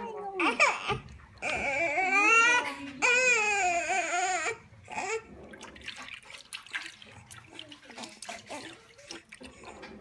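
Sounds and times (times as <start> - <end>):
baby crying: 0.0 - 5.3.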